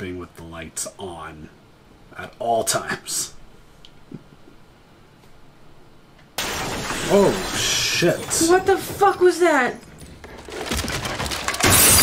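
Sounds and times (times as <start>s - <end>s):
loud crash-like noise: 6.4s - 8.2s, 10.6s - 12.0s.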